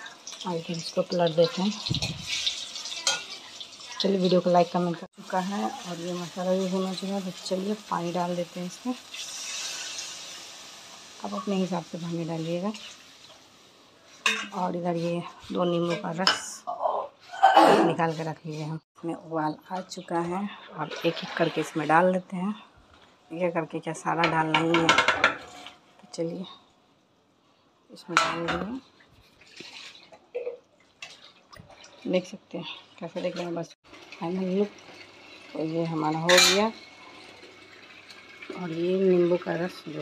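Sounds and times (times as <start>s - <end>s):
water sizzling in hot pan: 0.0s - 16.6s, 19.8s - 22.3s, 28.4s - 40.0s.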